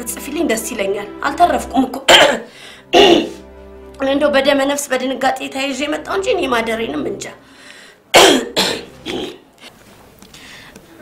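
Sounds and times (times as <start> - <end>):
woman coughing: 2.1 - 3.4, 8.1 - 9.5.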